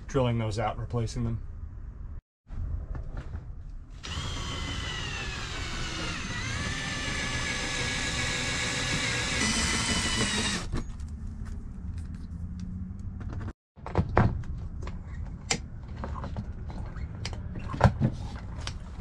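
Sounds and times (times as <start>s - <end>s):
cordless drill drilling into metal: 4.0s - 10.7s.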